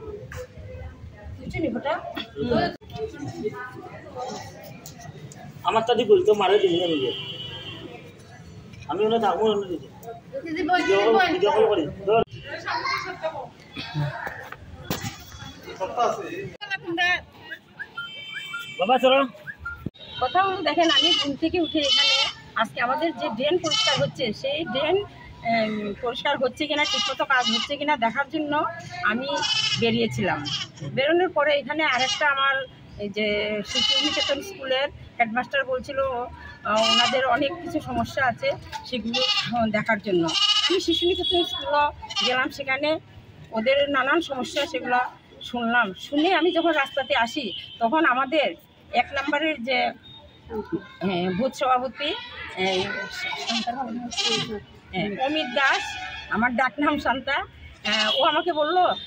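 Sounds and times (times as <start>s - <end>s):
woman speaking: 20.2s - 50.0s, 50.6s - 59.0s.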